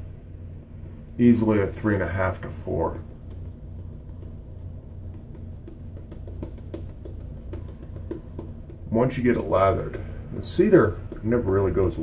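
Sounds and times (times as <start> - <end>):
steady low hum: 0.0 - 12.0
shaving brush on face: 1.4 - 12.0.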